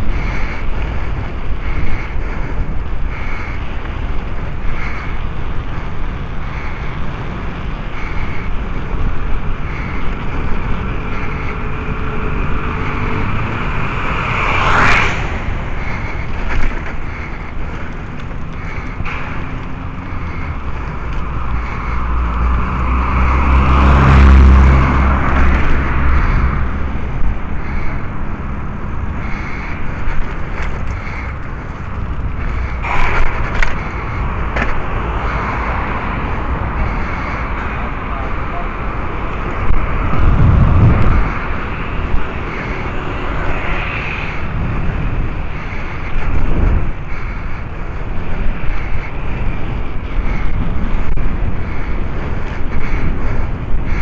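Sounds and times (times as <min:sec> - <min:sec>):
motor vehicle passing: 0:00.0 - 0:54.0
wind rush on microphone: 0:00.0 - 0:54.0
low rumble passing: 0:09.4 - 0:48.7.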